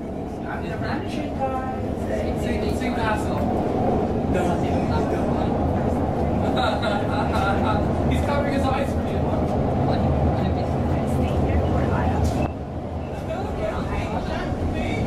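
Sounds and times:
passengers' voices: 0:00.0 - 0:15.0
train low rumble: 0:00.0 - 0:15.0.

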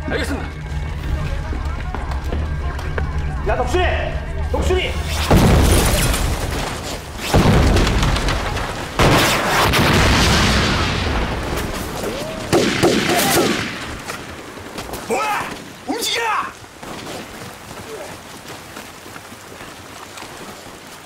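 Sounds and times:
heavy explosions: 0:04.9 - 0:14.5
gunfire: 0:05.1 - 0:11.4, 0:12.5 - 0:14.2.

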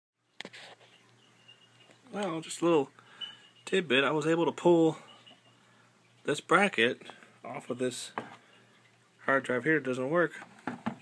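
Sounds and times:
low steady hum: 0:00.2 - 0:10.9.

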